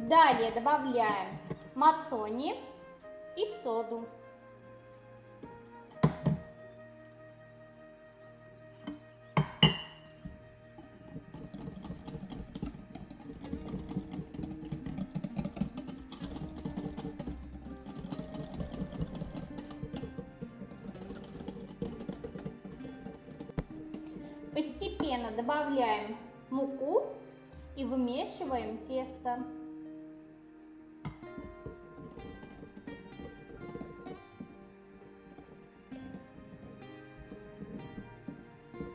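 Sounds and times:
soft background music: 0.0 - 38.9
whisk beating batter in glass bowl: 11.0 - 24.9, 31.4 - 34.7.

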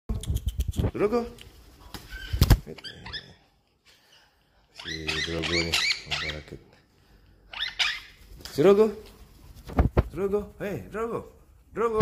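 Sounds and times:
parakeet calling: 4.7 - 6.6, 7.5 - 8.2
high parakeet squawks: 7.5 - 8.2.

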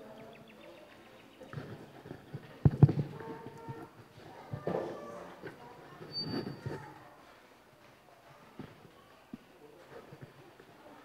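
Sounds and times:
microphone handling thumps: 1.5 - 5.0
microphone handling bumps: 1.5 - 6.9.

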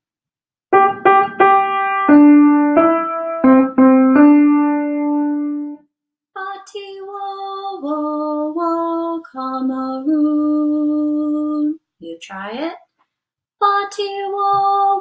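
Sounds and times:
piano melody: 0.7 - 5.8
woman singing: 6.4 - 11.8, 13.6 - 15.0.

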